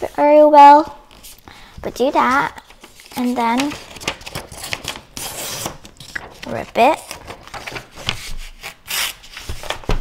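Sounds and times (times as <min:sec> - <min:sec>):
paper rustling: 0:02.2 - 0:10.0.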